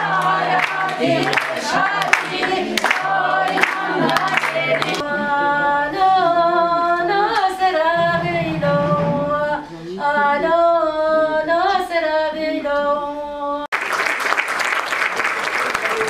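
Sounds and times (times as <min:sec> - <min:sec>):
rhythmic hand clapping: 0:00.0 - 0:05.0, 0:13.7 - 0:16.0
group singing: 0:00.0 - 0:13.0
steady low drone note: 0:08.0 - 0:09.6.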